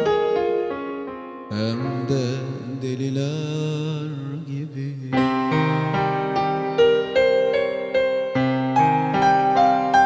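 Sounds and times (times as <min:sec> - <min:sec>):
lead melody with vibrato: 0:05.1 - 0:10.0.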